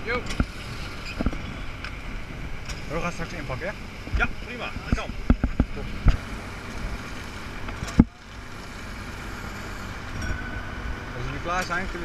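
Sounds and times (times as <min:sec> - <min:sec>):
fire engine running: 0:00.0 - 0:12.0.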